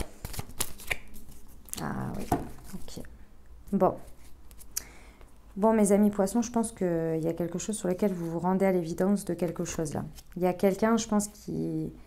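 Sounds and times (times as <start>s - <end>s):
cards snapping and sliding: 0.0s - 1.3s.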